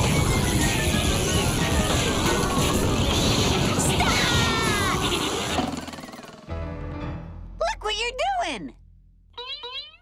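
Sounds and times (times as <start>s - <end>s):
loud cartoon music and effects: 0.0s - 7.3s.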